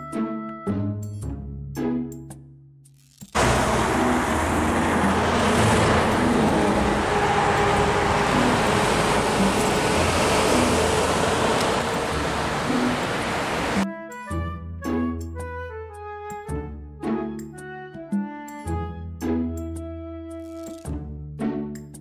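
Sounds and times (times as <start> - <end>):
faint engine hum: 3.4 - 13.8
road traffic rush: 3.4 - 13.9.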